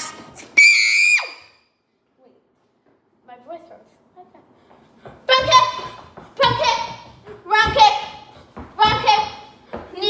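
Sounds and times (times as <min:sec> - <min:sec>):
boy screaming: 0:00.4 - 0:01.6.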